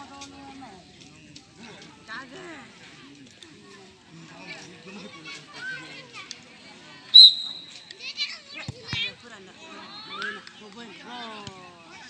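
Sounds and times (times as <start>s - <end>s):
people calling out: 7.1s - 7.9s.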